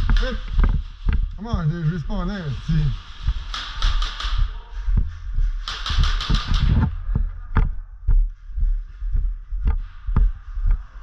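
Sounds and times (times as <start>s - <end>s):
low thuds: 3.1s - 11.0s
airsoft guns firing: 3.5s - 4.6s, 5.6s - 6.8s.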